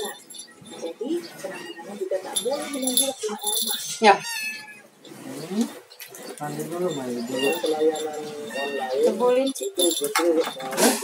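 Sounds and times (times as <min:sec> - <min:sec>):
kitten meowing: 0:04.2 - 0:04.8, 0:07.2 - 0:09.2.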